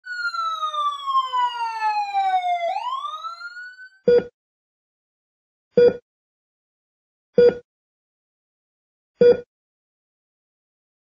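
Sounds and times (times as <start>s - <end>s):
siren wail: 0.0s - 4.0s.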